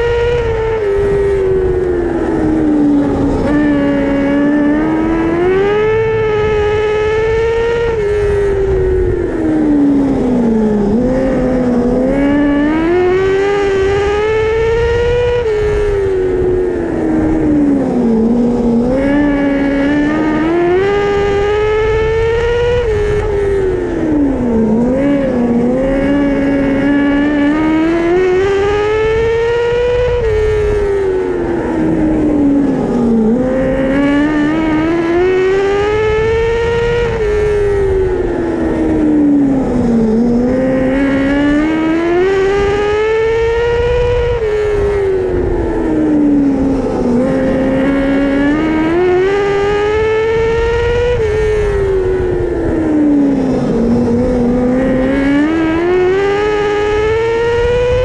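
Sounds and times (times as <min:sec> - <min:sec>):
racing car engine: 0:00.0 - 0:58.0
steady rumble: 0:00.0 - 0:58.0.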